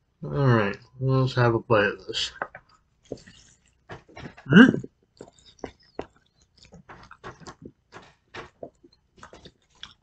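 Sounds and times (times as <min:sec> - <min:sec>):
person chewing food: 0:02.4 - 0:10.0
wet mouth clicks and smacks: 0:05.2 - 0:10.0.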